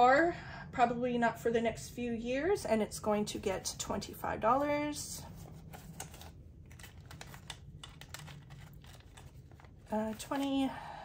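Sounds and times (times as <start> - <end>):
bills flicking and rustling: 5.3 - 10.8.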